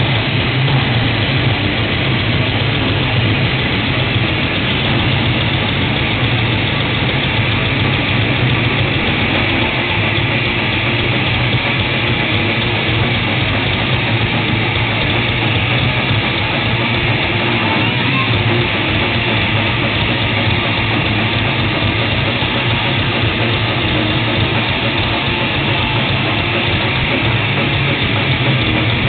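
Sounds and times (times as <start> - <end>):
metal band playing live: 0.0 - 29.0.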